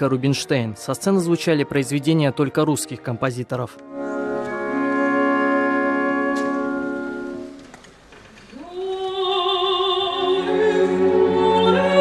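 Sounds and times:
orchestra holding a chord: 3.8 - 7.6
person singing with vibrato: 8.6 - 12.0.

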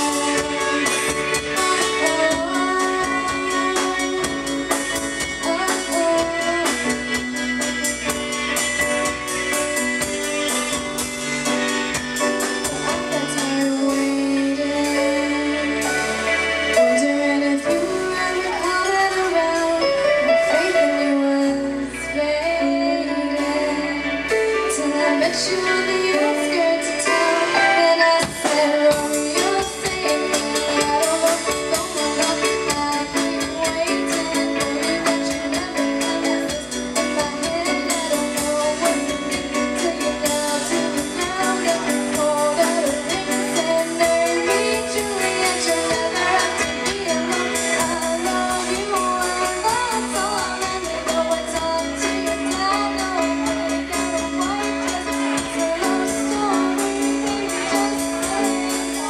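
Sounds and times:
person singing: 0.0 - 8.6, 11.5 - 59.0
bass guitar: 0.0 - 59.0
drum kit: 0.0 - 59.0
electric guitar: 0.0 - 59.0
keyboard: 0.0 - 59.0.

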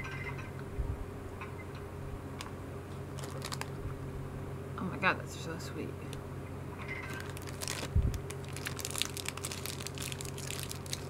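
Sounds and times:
candy wrapper crinkling: 3.1 - 3.8, 7.1 - 11.0.

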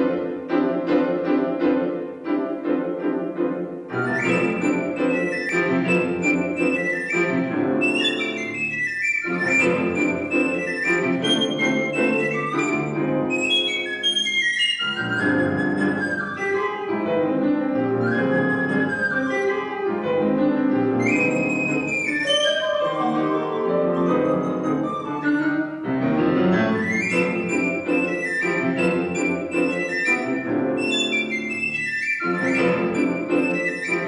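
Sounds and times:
grand piano accompaniment: 0.0 - 34.0
recorder melody: 3.9 - 34.0.

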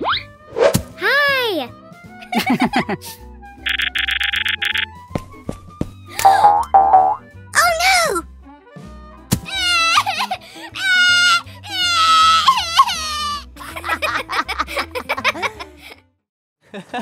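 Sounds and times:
light background music: 0.0 - 16.1
wavering cartoon crying wail: 9.5 - 13.6.

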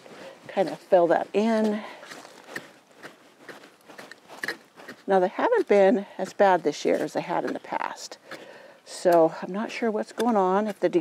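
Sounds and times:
hoe scraping soil: 0.0 - 11.0.

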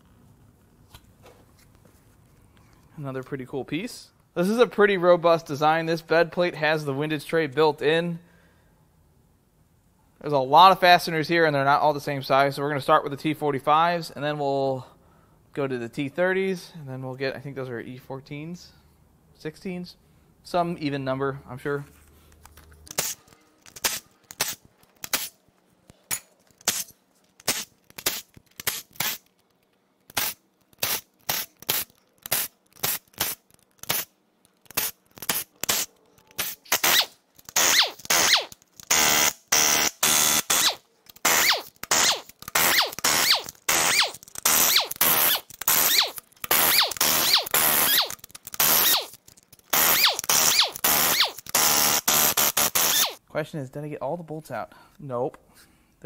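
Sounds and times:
air impact wrench bursts: 26.6 - 29.3, 30.1 - 34.1, 34.7 - 53.2
cordless driver bursts: 34.7 - 53.2.

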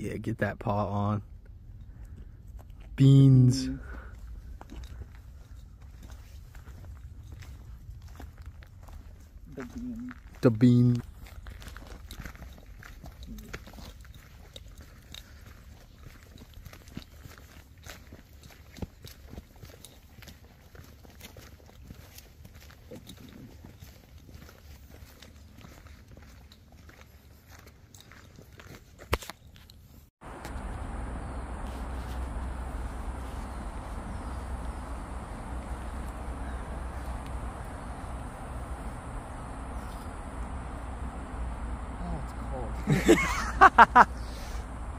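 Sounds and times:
steady low rumble: 0.0 - 16.8, 30.2 - 44.9
footsteps on dirt trail: 1.4 - 44.9.

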